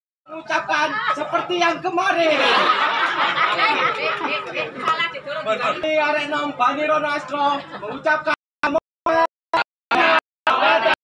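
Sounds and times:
crowd chatter: 0:02.4 - 0:06.7.

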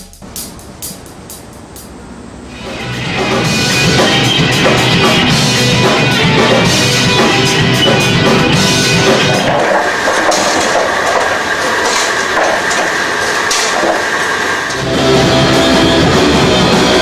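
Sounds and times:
live rock band: 0:02.8 - 0:09.6.

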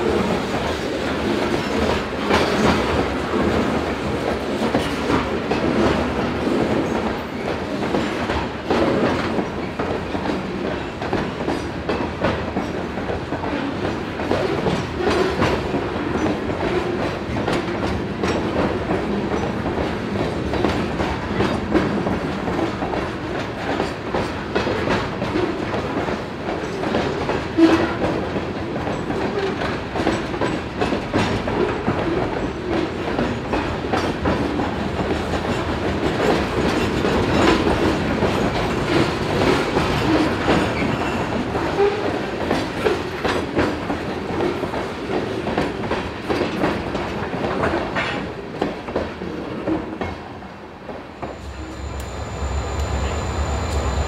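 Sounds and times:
train wheels clattering over rail joints: 0:00.1 - 0:50.3
freight cars rumbling past: 0:51.1 - 0:54.0.

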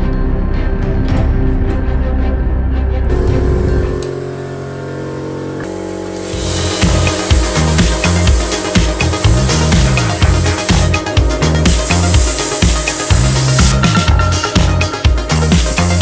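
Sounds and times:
background music: 0:00.0 - 0:16.0
plasma torch hissing and crackling: 0:05.6 - 0:16.0.

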